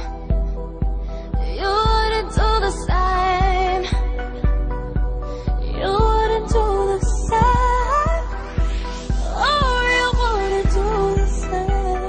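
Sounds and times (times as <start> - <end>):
low drum beat: 0.0 - 11.4
female vocal singing: 1.4 - 4.4, 5.7 - 12.0.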